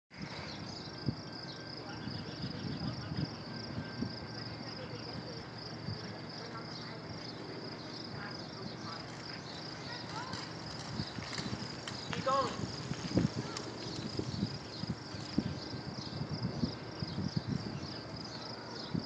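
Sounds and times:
pulsing insect trill: 0:00.2 - 0:19.0.

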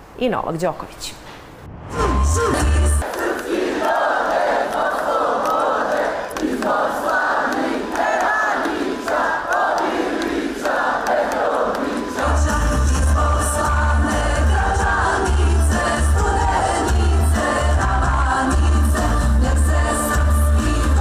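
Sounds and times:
low bass hit: 0:01.6 - 0:03.0
crowd chanting and singing: 0:01.7 - 0:21.0.

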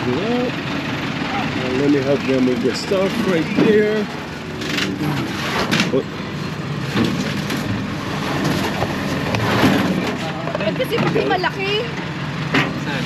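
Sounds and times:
people talking: 0:00.0 - 0:00.6, 0:01.3 - 0:04.2, 0:04.8 - 0:06.1, 0:10.0 - 0:11.9, 0:12.8 - 0:13.0
traffic: 0:00.0 - 0:13.0
knocks and clatters: 0:04.6 - 0:06.0, 0:06.9 - 0:11.2.

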